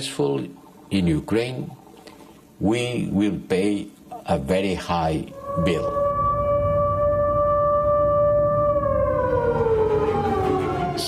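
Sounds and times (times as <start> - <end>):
low background noise: 0.0 - 11.0
air-raid siren wailing: 5.3 - 11.0.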